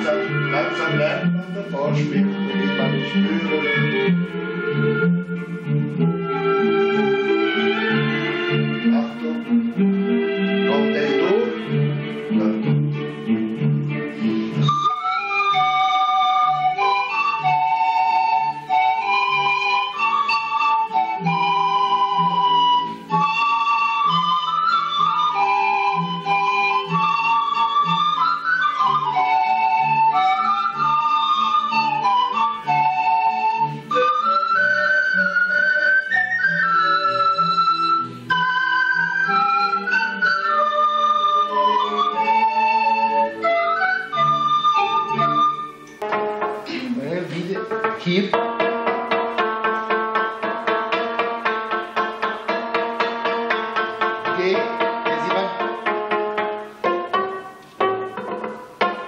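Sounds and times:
pan flute ensemble: 0.0s - 59.0s.

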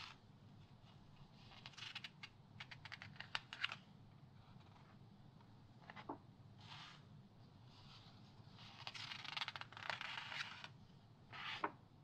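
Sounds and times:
magazine pages turning: 8.6s - 10.7s.

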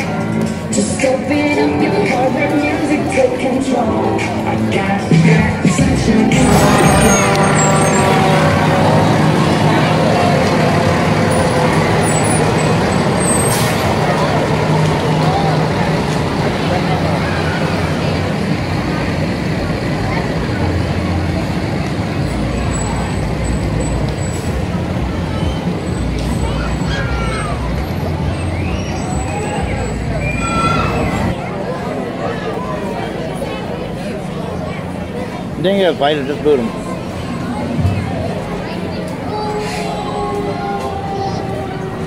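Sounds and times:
background voices: 0.0s - 25.4s
diesel truck engine passing: 0.0s - 42.0s.

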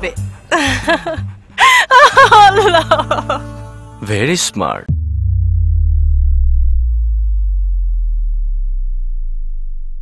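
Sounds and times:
deep synth bass tone sliding down: 4.9s - 10.0s.

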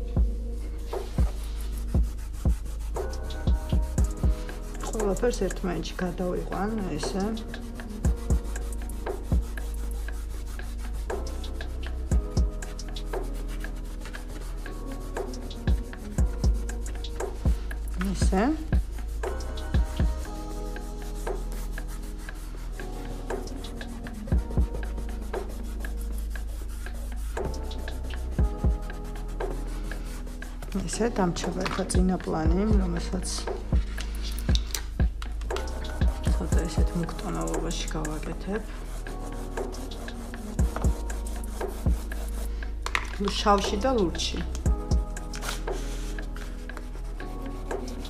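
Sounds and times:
background music with held notes: 0.0s - 48.0s
soft deep beats: 0.0s - 48.0s
fingers rubbing pastel on paper: 1.0s - 44.6s, 45.2s - 48.0s.

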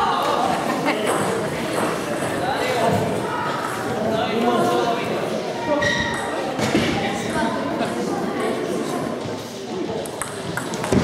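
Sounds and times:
voices echoing in hall: 0.0s - 11.0s.

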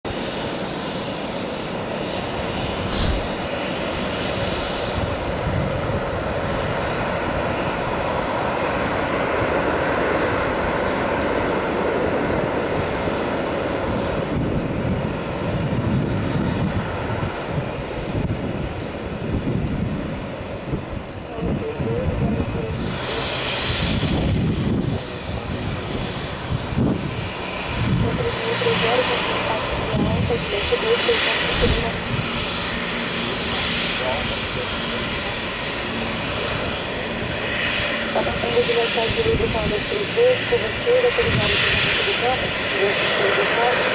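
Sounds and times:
jet engines taxiing: 0.1s - 43.9s.

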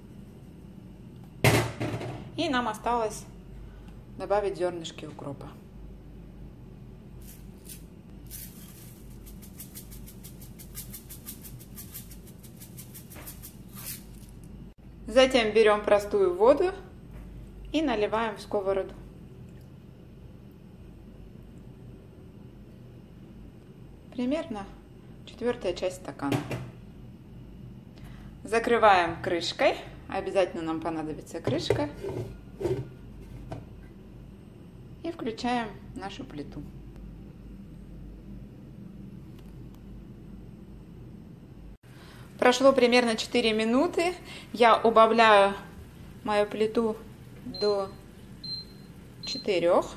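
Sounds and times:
low steady hum: 0.0s - 49.9s
seeds rattling in shaker jar: 7.2s - 14.5s.

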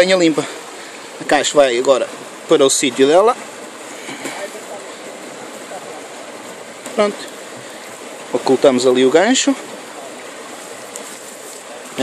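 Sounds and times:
stream running water: 0.0s - 12.0s
rustling of leaves and stems: 2.6s - 12.0s.

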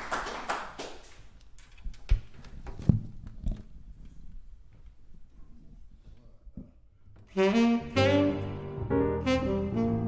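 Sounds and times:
grand piano playing jazz: 7.3s - 10.0s
tenor saxophone: 7.3s - 10.0s.

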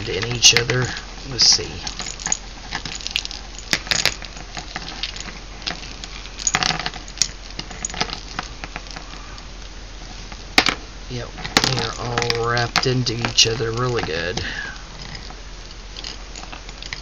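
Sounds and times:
jingle bells clinking and rattling: 1.6s - 9.4s.

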